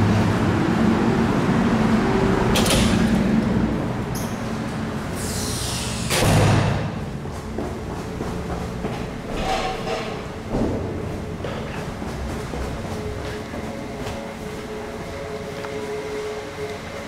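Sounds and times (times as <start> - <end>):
footsteps on stairs: 7.0 - 15.7.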